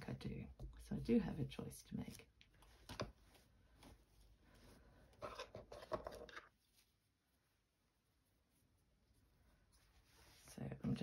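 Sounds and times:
linen fabric rustling: 2.0s - 11.0s.

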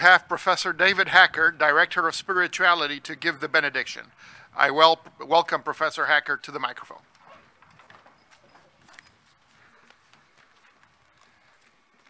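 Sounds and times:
open-air background hiss: 0.0s - 12.0s.

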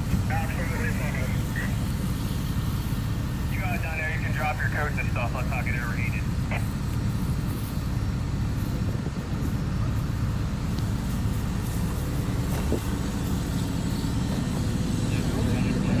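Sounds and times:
fire engine rumbling: 0.0s - 16.0s.

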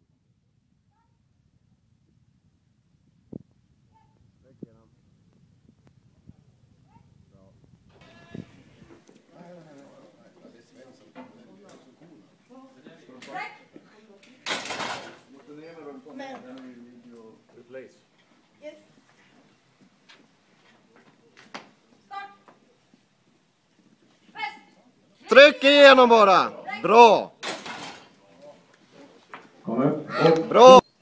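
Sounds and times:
voices: 6.3s - 19.9s, 20.6s - 27.4s, 28.0s - 30.9s.

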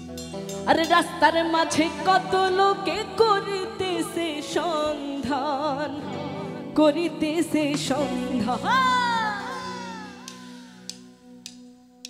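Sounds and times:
band backing chord: 0.0s - 11.6s
woman singing high note: 8.0s - 11.0s.

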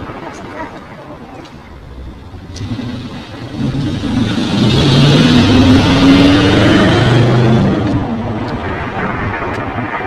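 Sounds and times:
vehicle engine running: 1.6s - 10.0s.

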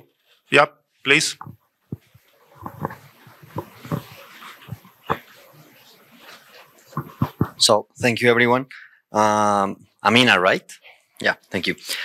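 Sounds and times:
microphone handling knocks and rustle: 1.4s - 5.7s, 6.4s - 7.6s.

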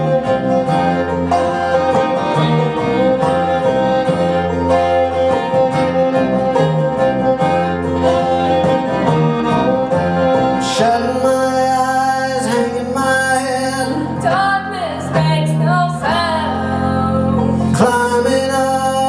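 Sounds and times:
acoustic guitar: 0.0s - 19.0s
banjo: 0.0s - 19.0s
fiddle: 0.0s - 19.0s
upright bass: 0.0s - 19.0s.

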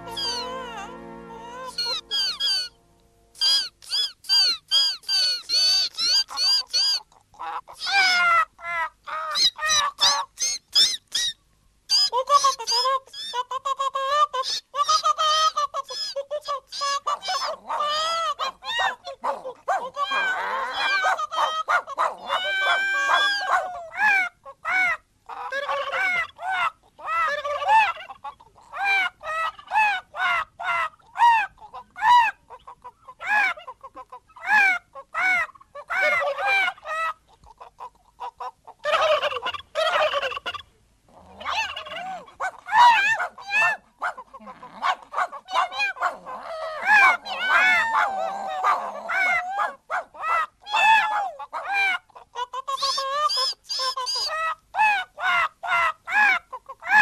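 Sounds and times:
chicken-like clucking: 0.0s - 2.8s, 3.4s - 11.3s, 11.9s - 57.0s
turkey-like gobbling: 0.0s - 2.8s, 3.4s - 11.3s, 11.9s - 19.1s, 19.9s - 40.7s, 41.3s - 57.0s.

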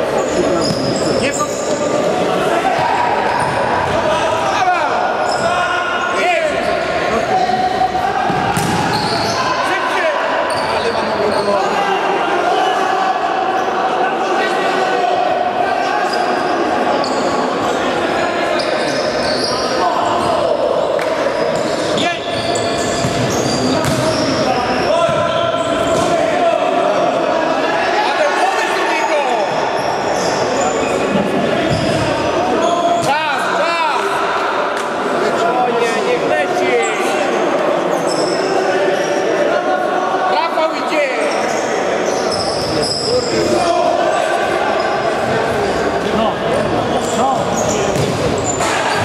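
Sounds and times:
players shouting: 0.0s - 49.0s
ball kicked and bouncing: 23.0s - 24.0s, 47.9s - 48.3s.

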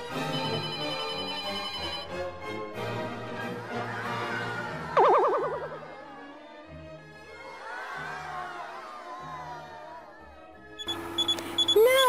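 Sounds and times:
music: 0.0s - 12.0s
wavering siren-like wail: 5.0s - 6.2s
short high electronic beeps: 10.8s - 12.0s.

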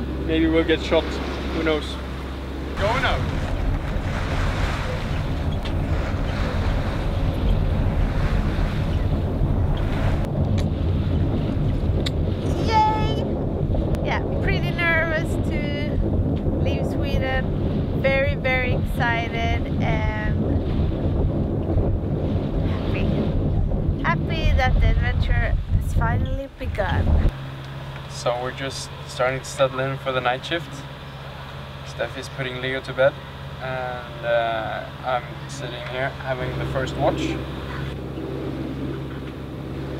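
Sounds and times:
boat engine running: 0.0s - 39.9s
wind noise on microphone: 2.5s - 27.4s.

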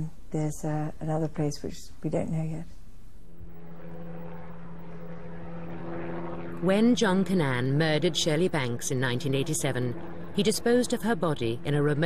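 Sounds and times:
steady low drone: 3.2s - 12.0s.

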